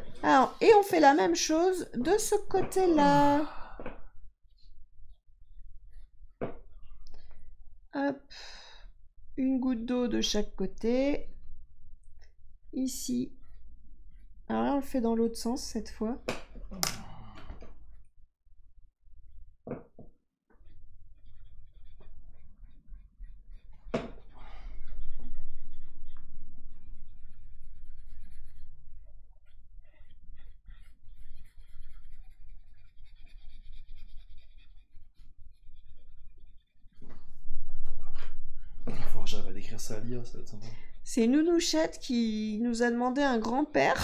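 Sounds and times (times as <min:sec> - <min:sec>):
woman's voice: 0:00.0 - 0:03.6, 0:08.0 - 0:08.3, 0:09.4 - 0:11.3, 0:12.8 - 0:13.3, 0:14.5 - 0:16.2, 0:41.1 - 0:44.0
pencil scratching on paper: 0:05.5 - 0:06.1, 0:13.0 - 0:16.0, 0:20.5 - 0:37.4.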